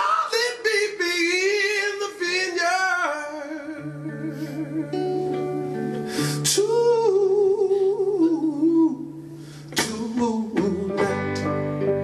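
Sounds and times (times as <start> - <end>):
guitar chords: 0.0 - 12.0.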